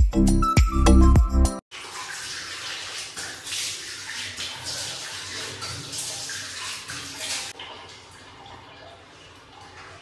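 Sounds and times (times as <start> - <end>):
water splashing on face: 1.7 - 8.9
water running from tap: 1.7 - 10.0.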